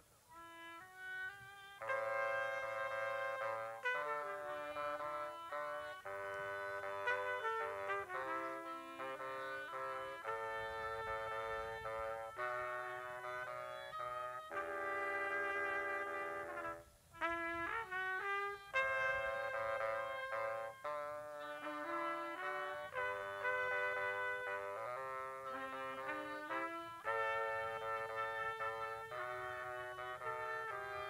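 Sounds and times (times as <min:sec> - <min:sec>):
wind trio playing: 0:00.0 - 0:31.0.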